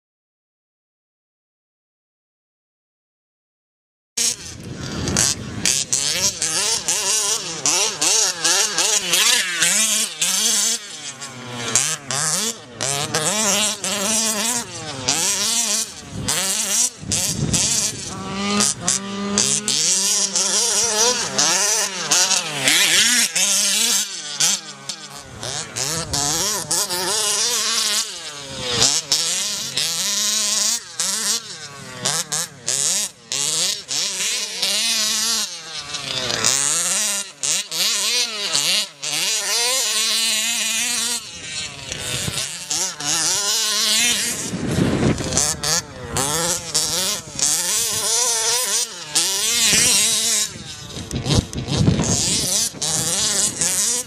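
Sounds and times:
small two-stroke engine revving: 0:04.2 - 0:54.0.

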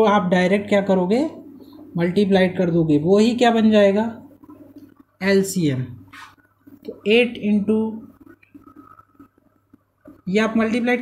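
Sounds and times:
low steady hum: 0:00.0 - 0:11.0
marker pen squeaking on whiteboard: 0:06.0 - 0:11.0.

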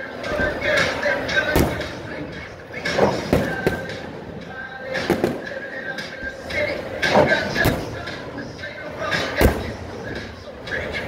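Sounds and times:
crowd murmur: 0:00.0 - 0:11.0
sharp echoing bangs: 0:01.4 - 0:10.4.

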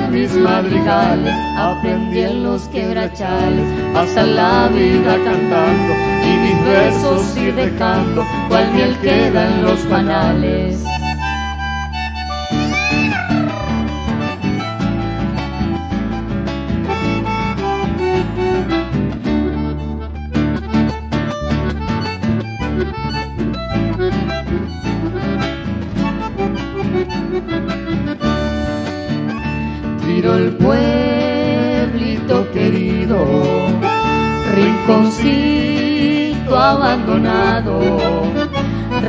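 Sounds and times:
acoustic guitar: 0:00.0 - 0:39.0
bandoneon melody: 0:00.0 - 0:39.0.

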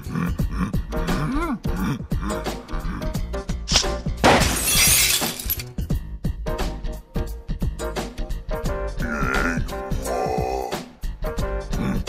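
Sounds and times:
background music: 0:00.0 - 0:12.0
car window glass shattering: 0:03.8 - 0:05.6.

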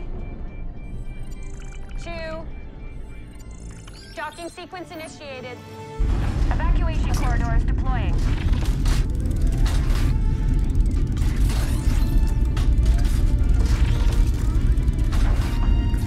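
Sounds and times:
music: 0:00.0 - 0:16.0
deep rumble: 0:06.0 - 0:16.0
mechanical clanks and knocks: 0:06.0 - 0:16.0.

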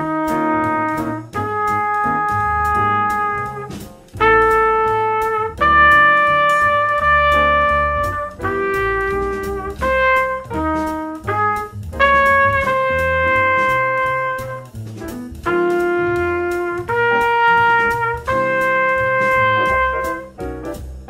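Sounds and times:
trumpet playing long tones: 0:00.0 - 0:14.7, 0:15.4 - 0:20.4
jazz backing track: 0:00.0 - 0:21.0.

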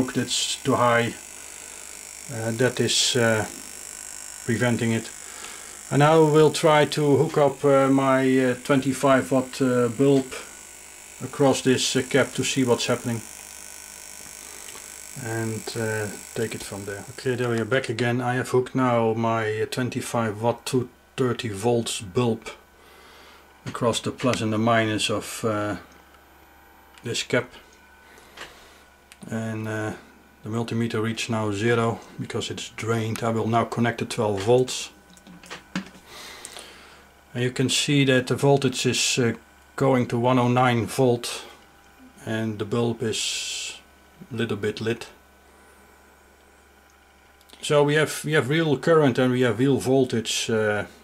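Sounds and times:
electrical hum and hiss: 0:00.0 - 0:51.0.

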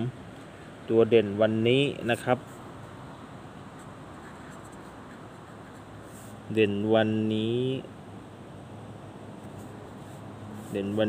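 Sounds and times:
marker writing on paper: 0:03.7 - 0:06.5, 0:09.4 - 0:11.0.

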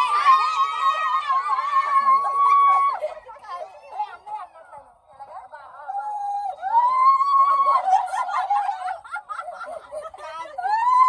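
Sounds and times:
people whooping and shrieking: 0:00.0 - 0:04.2, 0:05.8 - 0:11.0
people laughing: 0:06.1 - 0:11.0.

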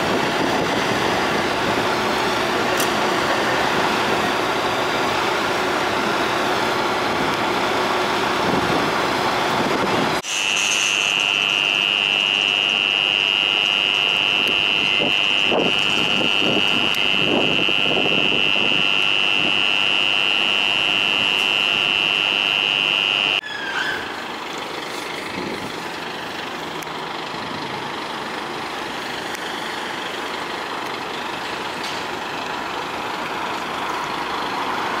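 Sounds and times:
vehicles idling: 0:00.0 - 0:10.2, 0:24.0 - 0:35.0
street traffic: 0:00.0 - 0:35.0
high-pitched electronic tone: 0:10.2 - 0:24.2.

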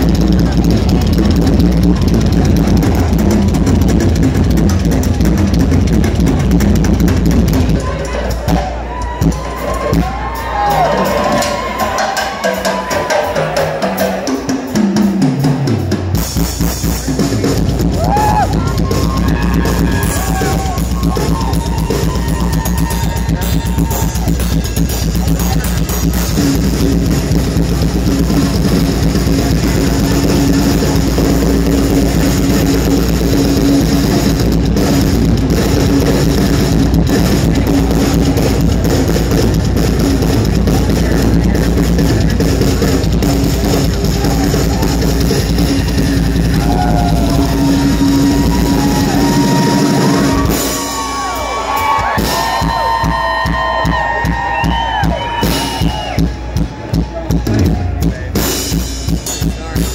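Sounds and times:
heavy drumming: 0:00.0 - 0:59.9
rock band playing loudly: 0:00.0 - 0:59.9.

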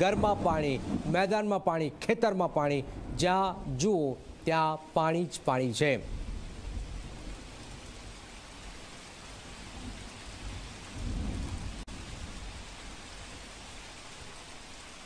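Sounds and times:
thunder rumble: 0:00.0 - 0:04.4, 0:06.0 - 0:13.6
heavy rain: 0:00.0 - 0:15.0.

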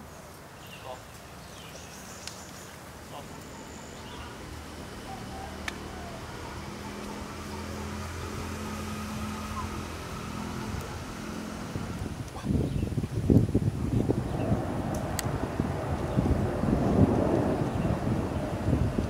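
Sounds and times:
low engine-like drone: 0:02.0 - 0:12.5, 0:13.5 - 0:19.0
wind buffeting microphone: 0:05.5 - 0:19.0.

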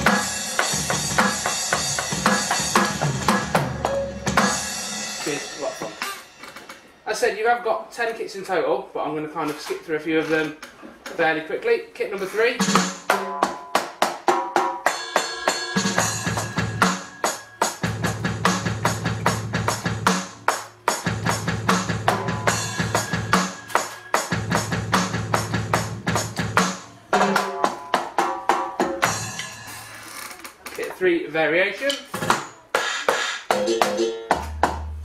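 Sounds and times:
electronic drum groove: 0:00.0 - 0:06.9, 0:12.6 - 0:30.0, 0:32.2 - 0:35.0.

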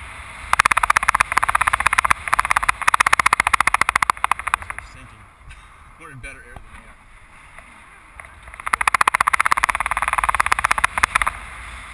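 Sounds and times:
rapid high beeps: 0:00.6 - 0:04.8, 0:08.5 - 0:11.3.

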